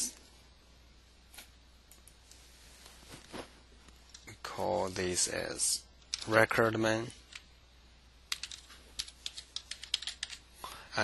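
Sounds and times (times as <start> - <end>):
computer keyboard typing: 8.3 - 10.4.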